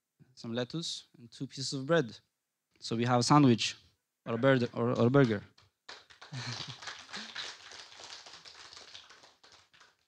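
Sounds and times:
audience applauding: 5.0s - 10.0s.

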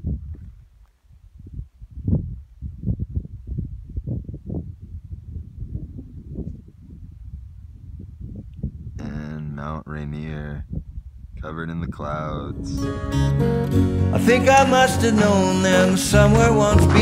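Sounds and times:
wind buffeting microphone: 0.0s - 13.5s.

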